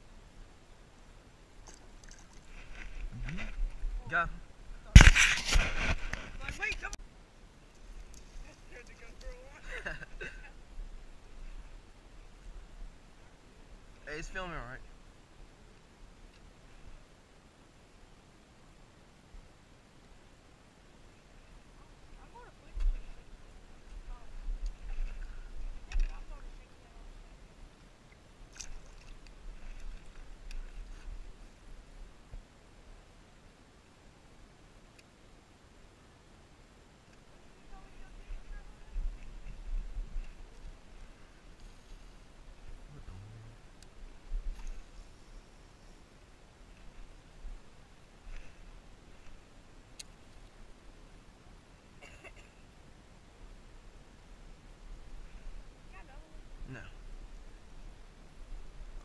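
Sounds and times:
wind rumble on microphone: 37.8s - 41.1s.

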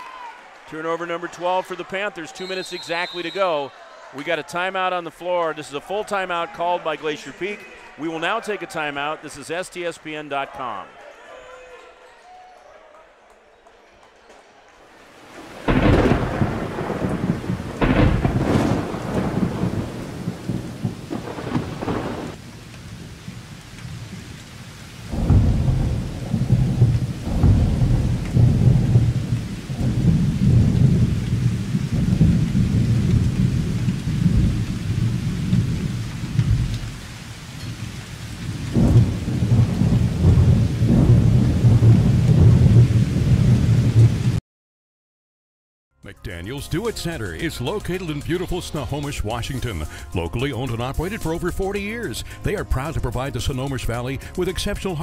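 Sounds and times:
rain: 14.8s - 44.4s
sharp thunder cracks: 15.4s - 24.4s, 25.0s - 37.2s, 37.8s - 44.4s
low thunder rumble: 15.4s - 44.4s.

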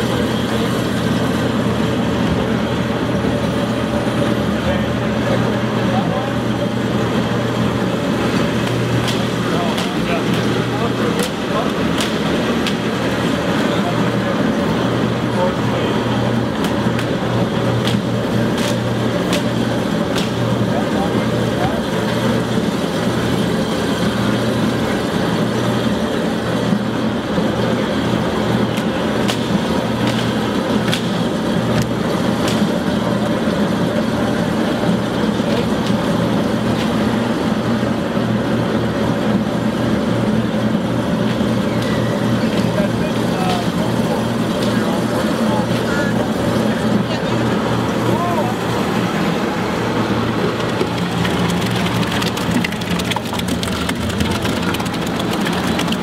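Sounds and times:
grape crusher humming: 43.3s - 56.0s.

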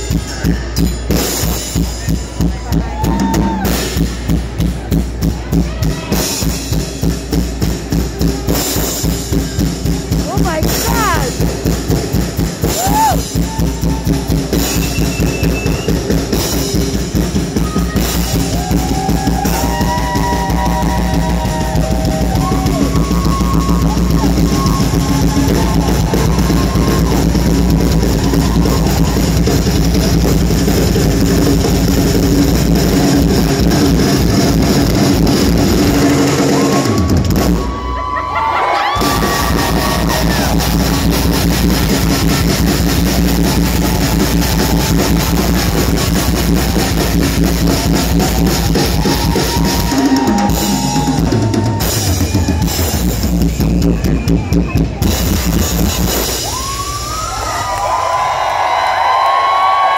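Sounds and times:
live rock band playing: 0.0s - 57.1s
drum kit: 0.0s - 59.9s.

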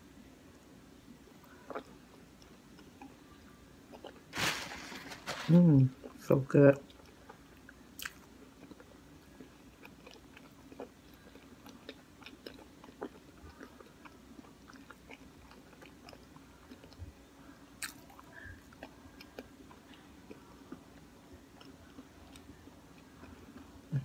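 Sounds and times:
faint steady hum: 0.0s - 24.0s
person chewing food: 1.3s - 4.3s, 6.8s - 24.0s.

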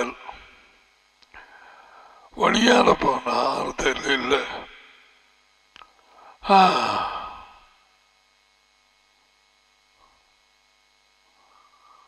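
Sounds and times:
man sighing: 6.2s - 7.7s.

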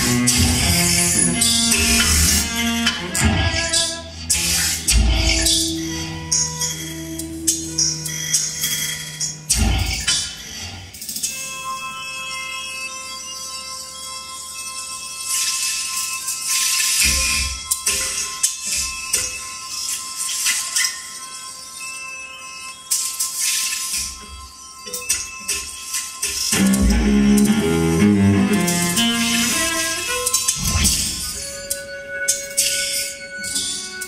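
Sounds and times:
held electronic tones: 24.0s - 30.6s.

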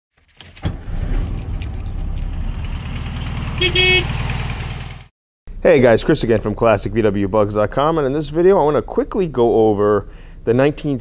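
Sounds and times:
car engine starting and idling: 0.2s - 5.1s.

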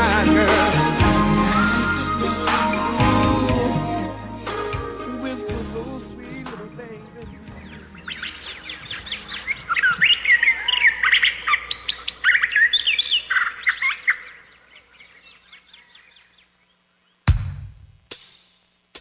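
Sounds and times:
birds chirping: 0.0s - 17.2s.

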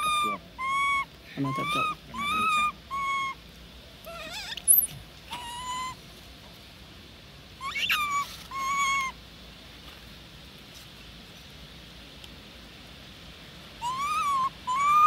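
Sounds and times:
monkey coo calls: 0.0s - 3.4s, 4.0s - 6.0s, 7.6s - 9.2s, 13.8s - 15.0s
monkey shrill squeak: 0.0s - 3.4s, 4.1s - 6.0s, 7.6s - 9.1s, 13.8s - 15.0s.

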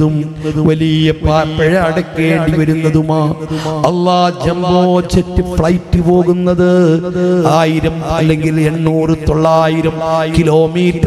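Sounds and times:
man preaching through a microphone: 0.0s - 11.0s.

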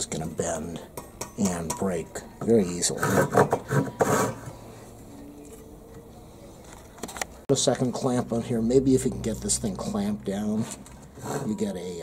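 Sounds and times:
saw cutting wood: 2.9s - 4.5s.

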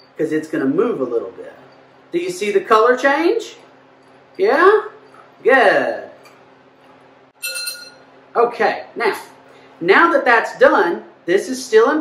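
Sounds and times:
glass rod clinking on glass: 7.4s - 8.0s.

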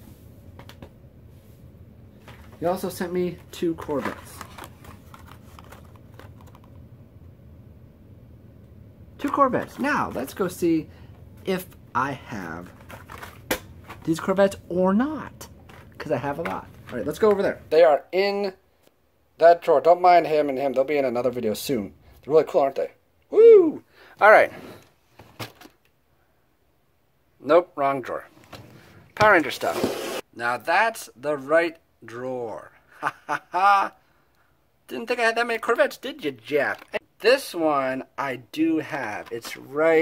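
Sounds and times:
low room hum: 0.0s - 40.0s
plastic packs clicking and rustling: 3.5s - 6.7s, 12.6s - 14.3s.

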